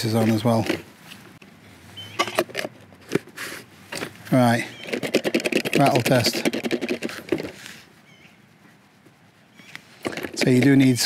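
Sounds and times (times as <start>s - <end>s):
plastic and metal clicks and knocks: 0.2s - 0.9s, 2.2s - 3.3s, 4.8s - 7.6s, 10.0s - 11.0s
sharp clacks: 4.8s - 7.5s.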